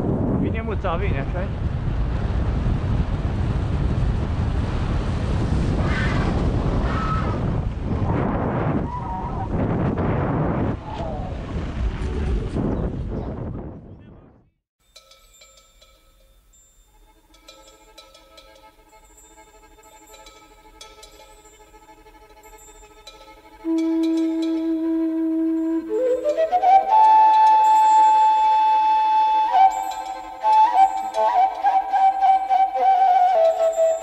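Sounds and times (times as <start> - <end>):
wind rushing over microphone: 0.0 - 14.6.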